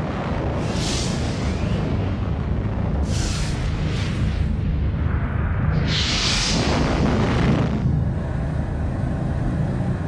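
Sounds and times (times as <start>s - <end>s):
deep explosion rumble: 0.0s - 10.0s.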